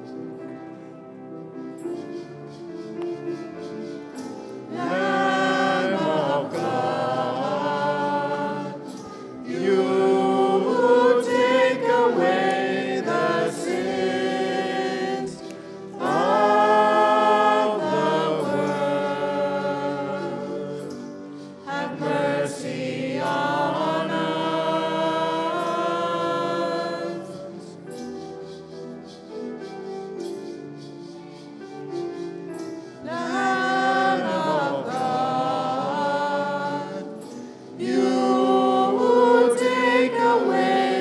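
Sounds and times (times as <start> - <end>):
choir singing a hymn: 2.8 - 30.3, 31.6 - 41.0.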